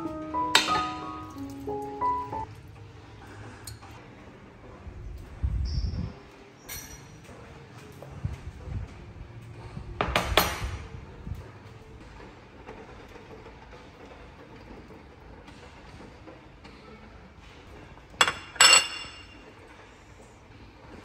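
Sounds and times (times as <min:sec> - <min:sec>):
ceramic bowl clinking on glass: 0:18.2 - 0:19.4.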